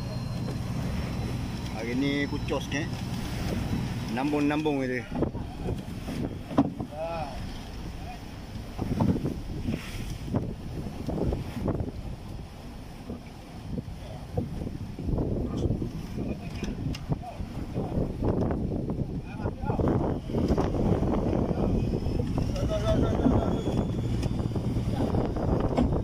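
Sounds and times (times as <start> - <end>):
water splashing against hull: 0.0 - 26.0
wind buffeting microphone: 0.0 - 26.0.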